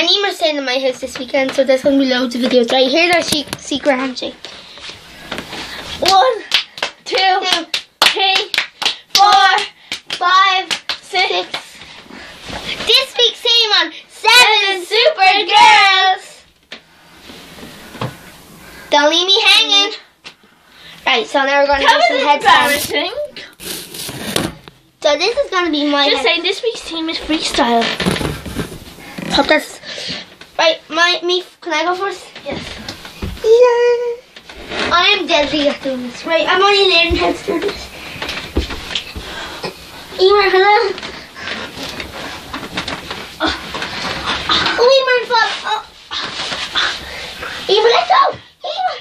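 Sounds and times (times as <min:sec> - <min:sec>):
microphone rubbing on clothing: 0:22.5 - 0:24.6
knocks and rustles of bedding: 0:27.3 - 0:29.5, 0:36.9 - 0:39.2
girl's high wavering voice: 0:47.7 - 0:49.0.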